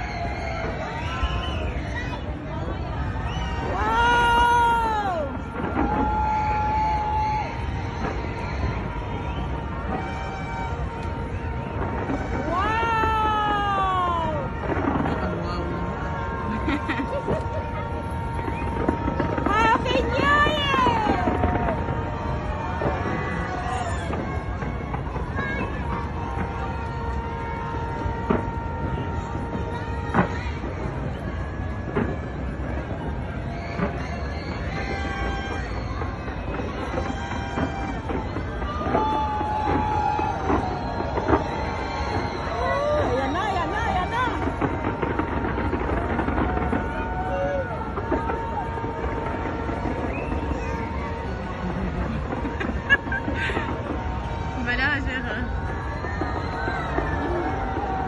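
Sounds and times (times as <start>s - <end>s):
crowd and fireworks rumbling: 0.0s - 58.0s.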